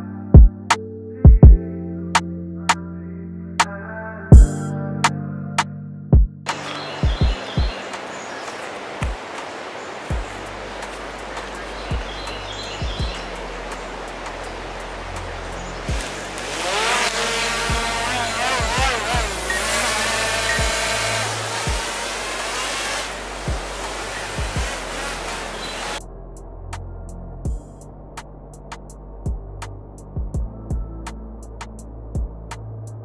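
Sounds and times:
background music with low beat: 0:00.0 - 0:02.9, 0:03.6 - 0:08.0, 0:10.1 - 0:33.0
drone motors whining: 0:14.8 - 0:26.0.

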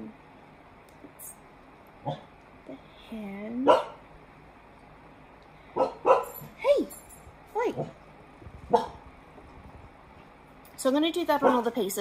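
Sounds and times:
dog barking: 0:02.0 - 0:02.3, 0:03.6 - 0:04.0, 0:05.8 - 0:06.4, 0:08.7 - 0:09.0, 0:11.4 - 0:11.7.

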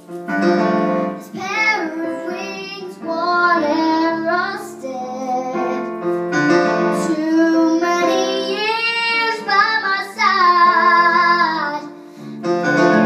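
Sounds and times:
electric keyboard piano chords: 0:00.0 - 0:13.0
girl singing a slow ballad: 0:01.1 - 0:13.0.

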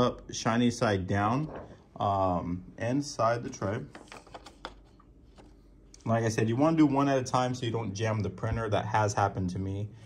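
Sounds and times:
faint handling noise: 0:01.3 - 0:02.0, 0:03.2 - 0:06.3.

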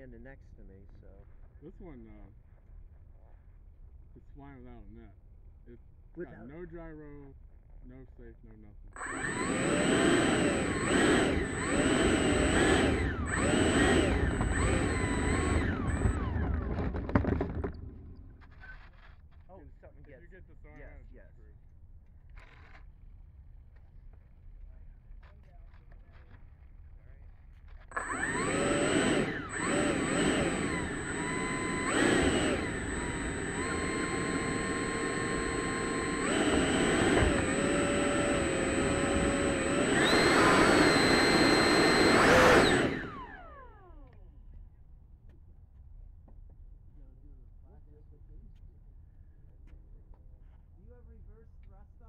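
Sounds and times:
steady high whine: 0:09.0 - 0:18.2, 0:27.9 - 0:43.6
electric ducted fan spooling: 0:09.0 - 0:18.3, 0:27.9 - 0:43.7.

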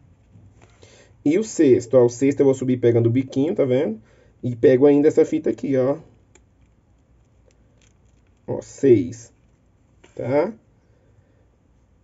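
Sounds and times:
needle and thread rustling: 0:06.0 - 0:10.8.

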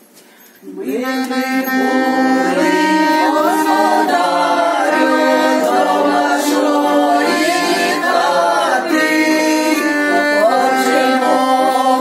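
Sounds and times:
group singing carol: 0:00.8 - 0:12.0
button accordion: 0:00.9 - 0:12.0.

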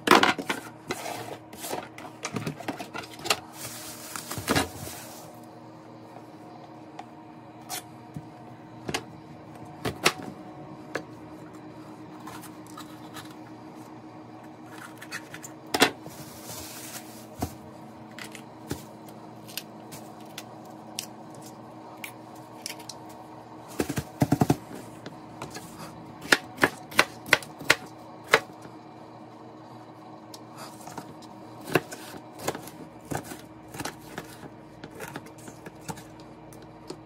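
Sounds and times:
steady low hum: 0:00.0 - 0:37.0.

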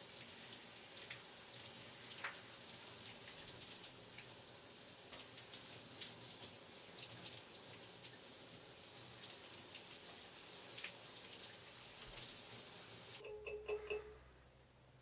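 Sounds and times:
shower water spraying: 0:00.0 - 0:13.2.

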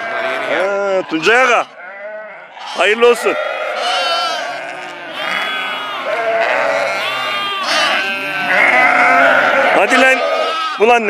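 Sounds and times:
sheep and lambs bleating: 0:00.0 - 0:11.0.

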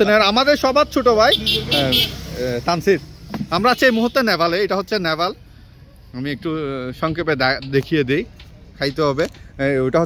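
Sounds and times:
passing motor vehicle: 0:00.0 - 0:09.5
men talking: 0:00.0 - 0:10.0.

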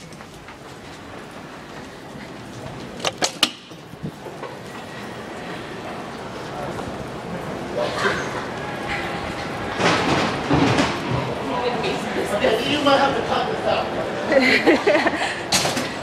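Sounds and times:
footsteps: 0:00.0 - 0:12.1
indistinct voices: 0:04.4 - 0:16.0.

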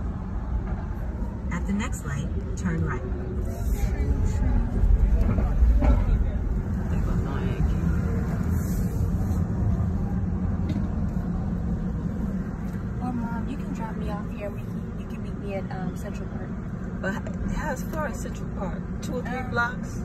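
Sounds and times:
car road and engine noise: 0:00.0 - 0:20.0.

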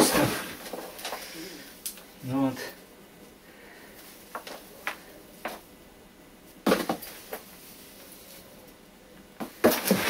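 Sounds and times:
light crackles: 0:00.0 - 0:02.2.

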